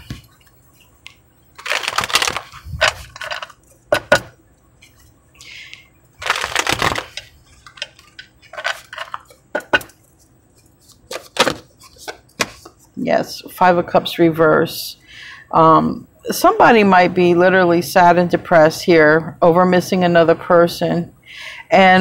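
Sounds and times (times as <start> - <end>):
cards being shuffled: 1.6 - 3.6, 6.2 - 9.4, 10.0 - 12.9.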